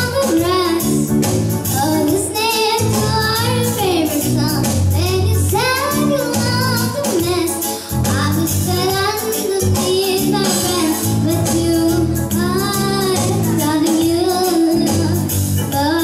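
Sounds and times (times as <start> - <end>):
electronic keyboard chords: 0.0 - 16.0
girl singing into a microphone: 0.0 - 16.0.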